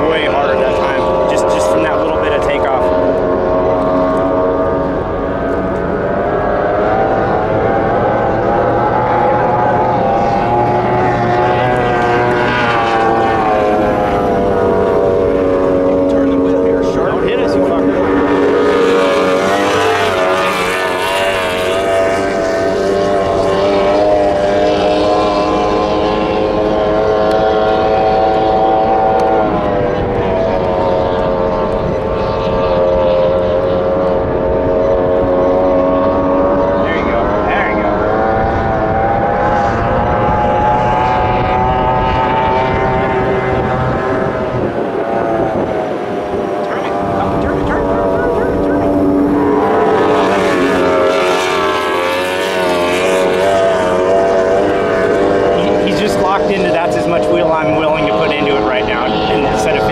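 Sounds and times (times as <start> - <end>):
outboard boat engine revving: 0.0 - 59.9.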